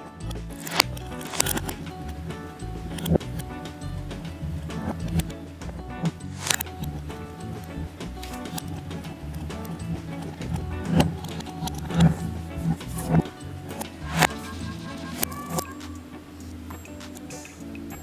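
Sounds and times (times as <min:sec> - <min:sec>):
background music with low pulse: 0:00.0 - 0:18.0
sharp clicks: 0:00.2 - 0:02.2, 0:06.3 - 0:16.0.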